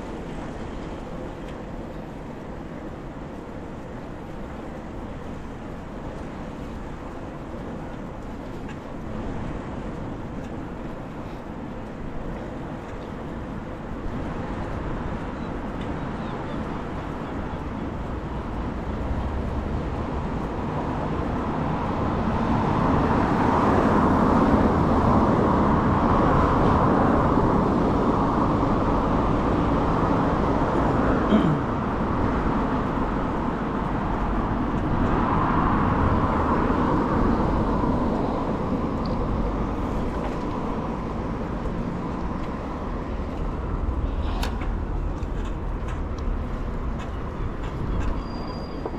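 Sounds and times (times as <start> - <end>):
road traffic: 0.0 - 48.9
rushing noise of riding: 0.0 - 48.9.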